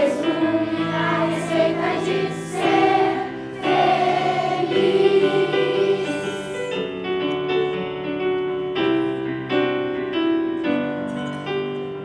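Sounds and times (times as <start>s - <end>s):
children's choir singing: 0.0s - 6.9s.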